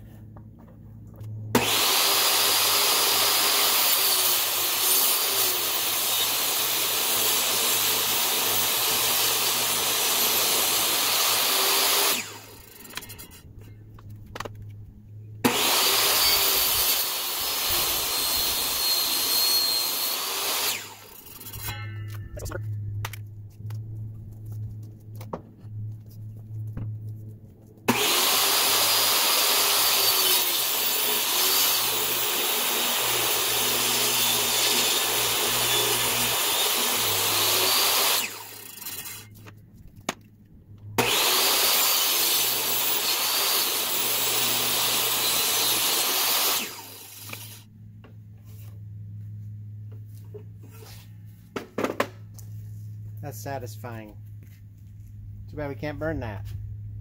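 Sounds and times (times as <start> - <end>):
table saw cutting wood: 1.5 - 13.4, 15.4 - 21.7, 27.9 - 39.4, 41.0 - 47.7.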